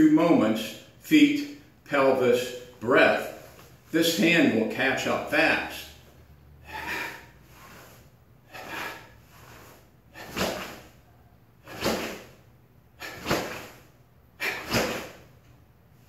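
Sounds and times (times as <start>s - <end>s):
sharp forceful exhalations: 6.6s - 15.4s.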